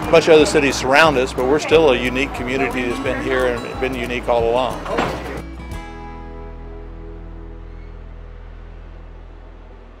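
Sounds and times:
low hum: 5.8s - 10.0s.

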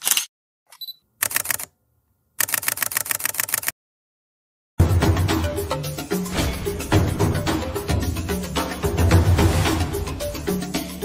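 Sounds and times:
camera shutter clicks: 0.0s - 1.7s, 2.4s - 3.7s
camera focus beep: 0.7s - 1.0s.

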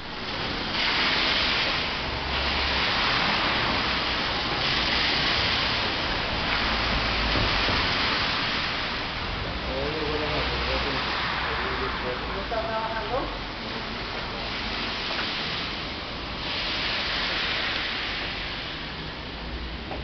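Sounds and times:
loud steady rushing noise: 0.0s - 20.0s.

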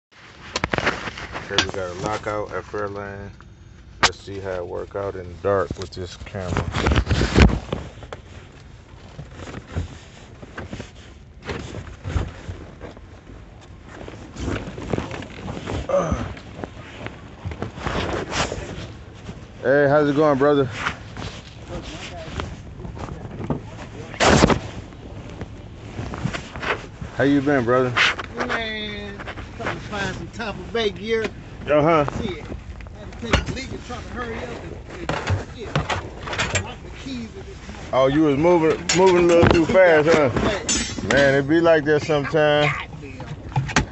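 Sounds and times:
soft knocks and rustles: 5.5s - 19.6s
faint talking: 41.9s - 43.4s.

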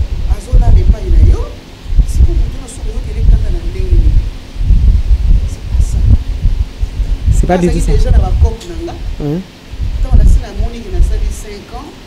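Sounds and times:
wind buffeting microphone: 0.0s - 11.4s.

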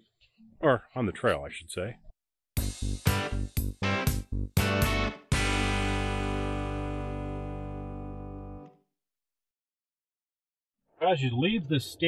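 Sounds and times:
guitar chord ringing: 4.8s - 8.7s.

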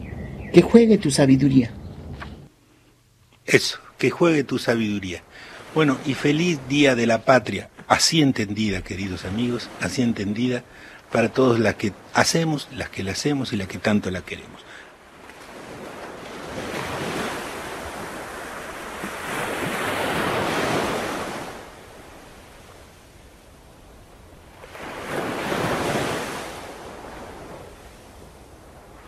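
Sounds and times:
waves washing in and out: 3.5s - 29.0s.

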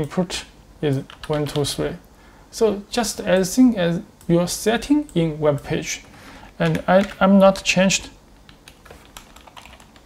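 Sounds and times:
keyboard typing clicks: 6.6s - 7.7s, 8.4s - 10.0s.

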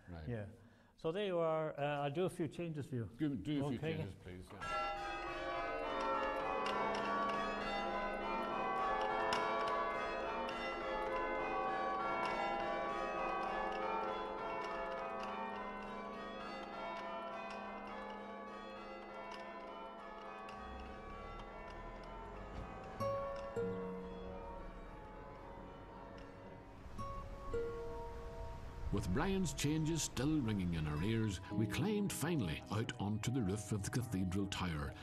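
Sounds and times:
church bells chiming: 4.6s - 35.0s.

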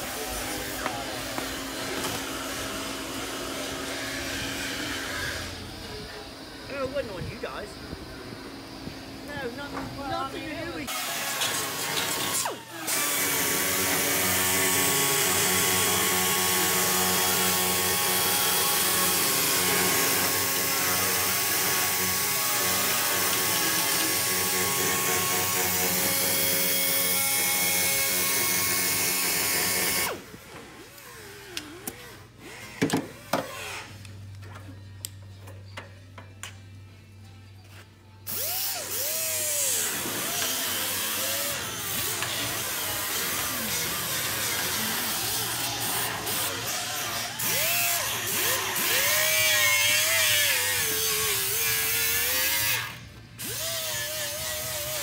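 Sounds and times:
air tool running: 10.2s - 30.3s, 38.3s - 55.0s.

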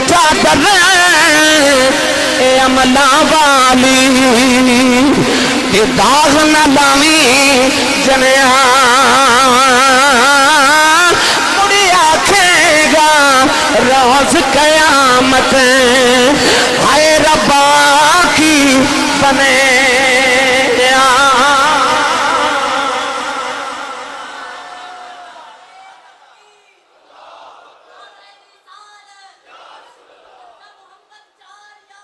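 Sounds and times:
man singing through pa system: 0.0s - 24.4s.

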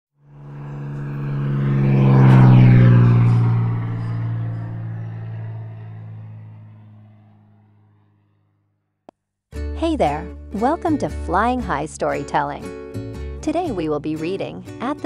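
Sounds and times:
propeller plane flying past: 0.2s - 9.0s.

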